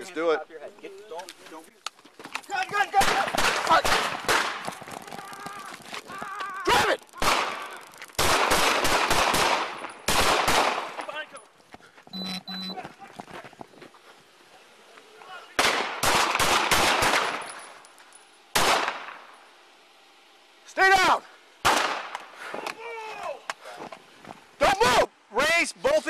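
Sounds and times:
gunshots in rapid volleys: 0:02.9 - 0:05.6, 0:06.8 - 0:11.0, 0:15.6 - 0:17.5, 0:18.6 - 0:19.2, 0:21.6 - 0:22.1.

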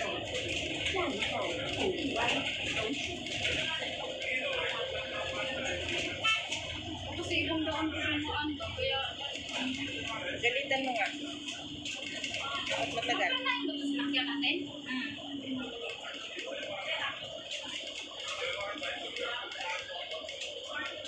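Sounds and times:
indistinct voices talking: 0:00.0 - 0:21.0.

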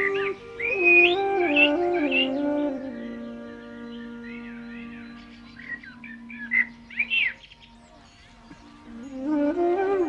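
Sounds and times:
low drone music note: 0:00.0 - 0:07.4
birds chirping: 0:00.0 - 0:10.0.

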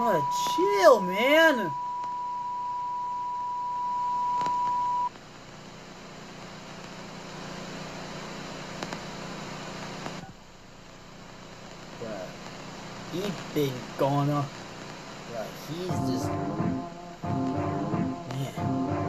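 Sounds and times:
faint hiss: 0:05.1 - 0:16.2
test-pattern tone: 0:15.8 - 0:19.0.

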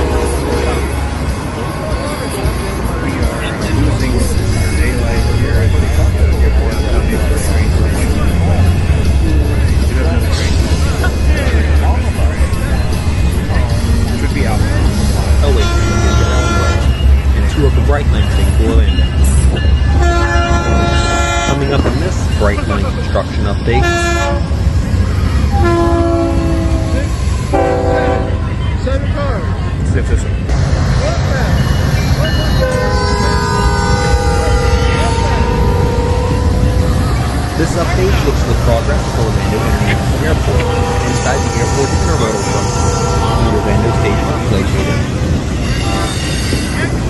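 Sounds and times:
train horn blasts: 0:00.0 - 0:01.3, 0:15.4 - 0:17.0, 0:19.9 - 0:22.1, 0:23.7 - 0:24.6, 0:25.5 - 0:28.5, 0:32.6 - 0:46.7
rumble of moving trains: 0:00.0 - 0:47.0
voices: 0:00.0 - 0:47.0.

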